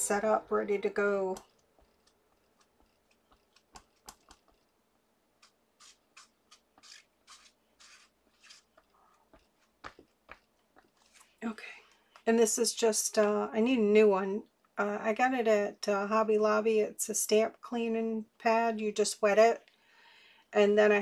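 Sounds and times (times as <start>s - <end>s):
cloth rubbing on rubber stamp: 5.4s - 11.4s.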